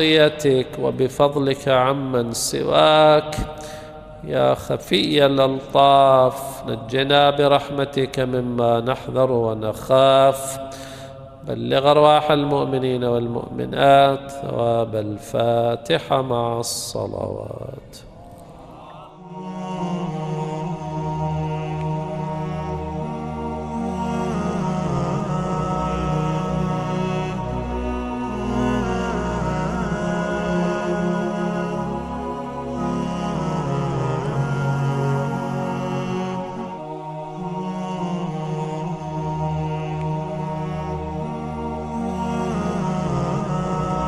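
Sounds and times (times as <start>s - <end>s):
background music low drone: 0.0s - 44.0s.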